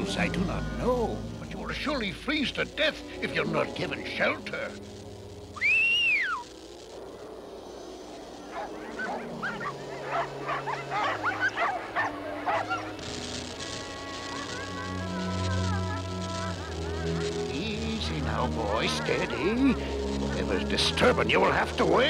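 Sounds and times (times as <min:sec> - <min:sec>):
background music: 0:00.0 - 0:22.0
dogs yipping and barking: 0:08.5 - 0:13.0
huskies whining: 0:08.5 - 0:17.4.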